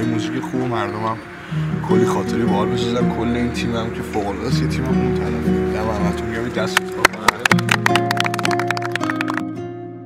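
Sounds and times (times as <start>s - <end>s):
acoustic guitar music: 0.0s - 10.0s
hands clapping quickly: 6.6s - 9.6s.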